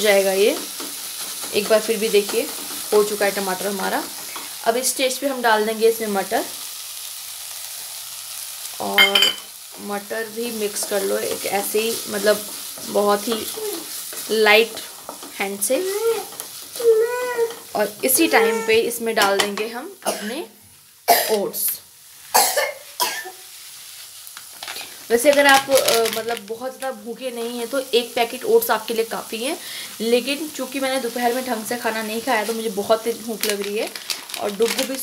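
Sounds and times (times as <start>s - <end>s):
vegetables sizzling in a pan: 0.0s - 35.0s
dry oats pouring into pan: 32.2s - 35.0s.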